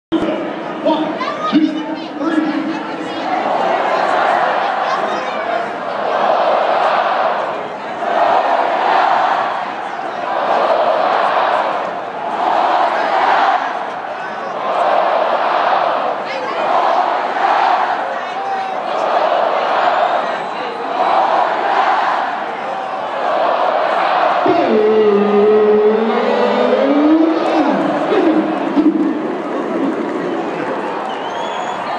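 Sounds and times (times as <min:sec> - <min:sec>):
stadium crowd chanting: 0:01.3 - 0:31.9.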